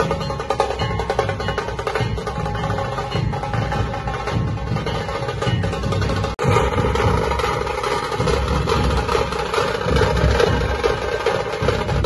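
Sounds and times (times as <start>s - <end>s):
cymbals clashing: 0.0s - 12.0s
dhol drums beaten: 0.0s - 12.0s
tasha drums rattling: 0.0s - 12.0s.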